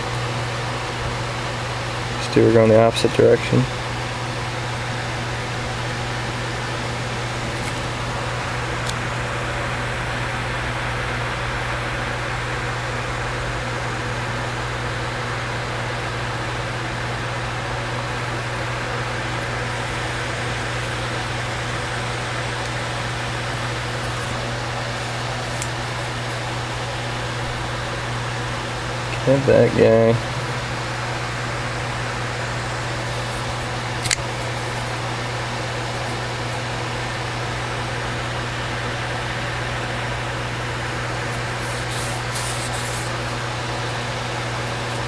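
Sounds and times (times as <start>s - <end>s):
fan-like room hum: 0.0s - 45.0s.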